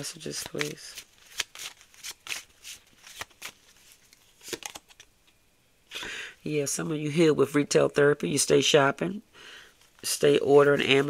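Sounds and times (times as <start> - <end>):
cards being shuffled: 0.0 - 5.1.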